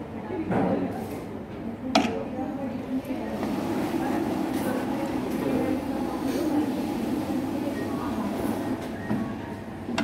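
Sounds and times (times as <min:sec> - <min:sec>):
banknote counting machine whirring: 0:03.4 - 0:09.0.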